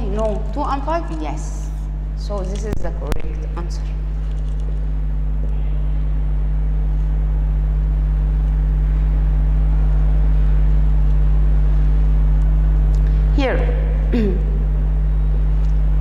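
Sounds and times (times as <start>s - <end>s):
low electrical hum: 0.0s - 16.0s.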